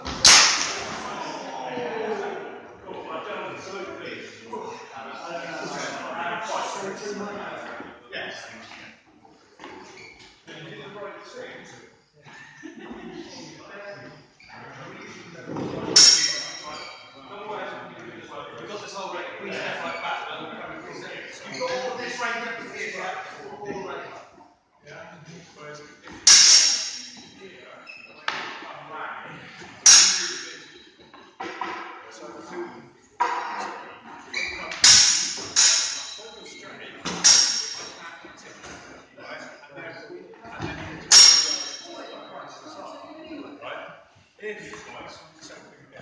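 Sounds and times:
steel blades clashing: 0.3s - 0.8s, 16.0s - 16.7s, 26.3s - 27.2s, 29.9s - 30.7s, 34.8s - 36.2s, 37.2s - 38.0s, 41.1s - 42.0s.

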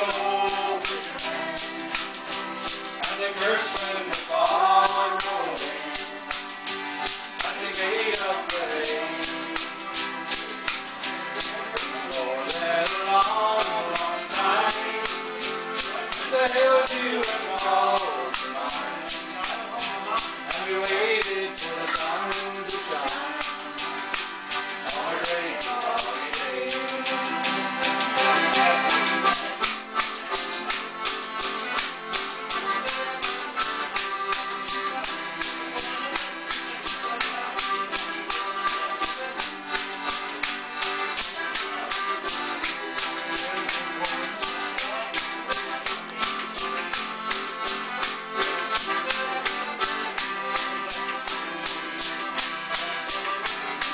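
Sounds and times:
bottle-cap jingles beating time: 0.0s - 53.9s
folk tune on accordion and guitar: 0.0s - 53.9s.

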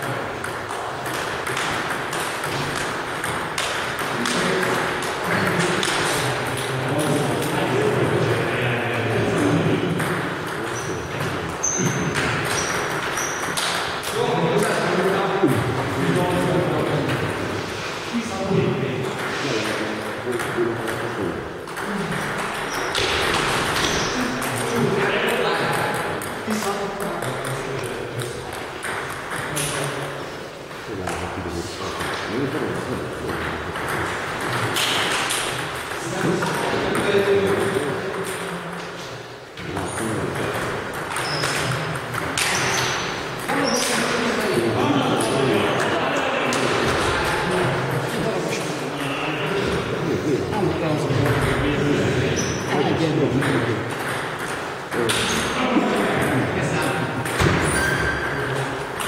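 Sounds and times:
people talking: 3.6s - 59.0s.

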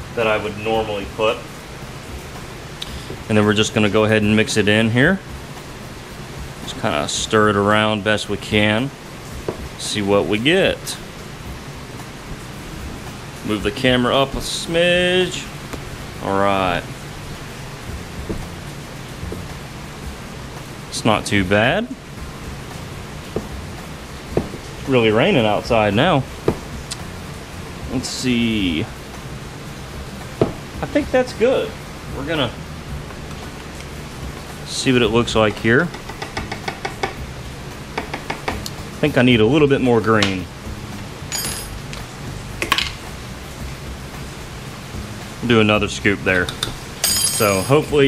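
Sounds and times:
heavy rain hissing: 0.0s - 48.0s.

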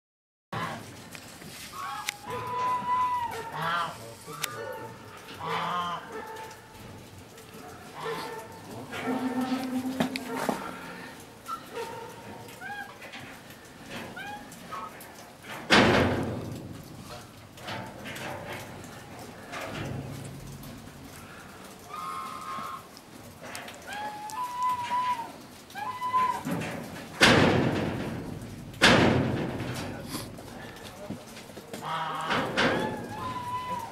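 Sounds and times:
animal enclosure being knocked: 15.7s - 16.9s, 27.2s - 30.0s.

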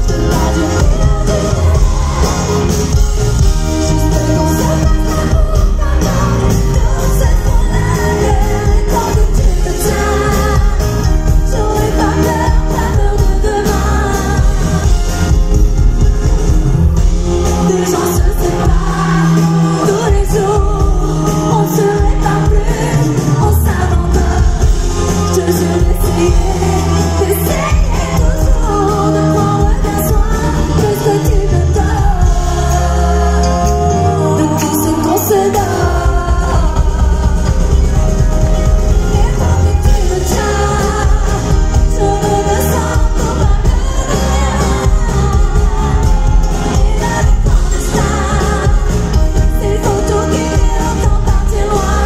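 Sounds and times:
woman singing into microphone: 0.0s - 15.0s, 17.4s - 52.0s
bass and drum beat: 0.0s - 52.0s
rock band playing: 0.0s - 52.0s.

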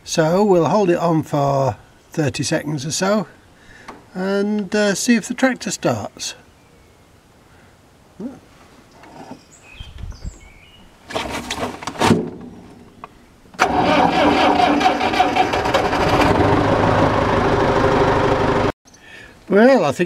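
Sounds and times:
tractor diesel engine starting: 13.6s - 18.7s.

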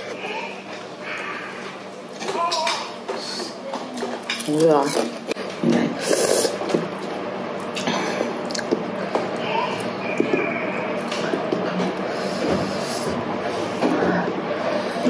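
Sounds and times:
chewing and wet mouth sounds: 6.0s - 10.3s.

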